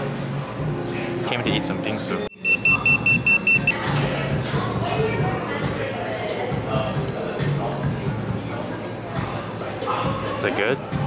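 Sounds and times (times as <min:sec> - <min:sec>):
pager beeping high-pitched: 0:02.3 - 0:03.8.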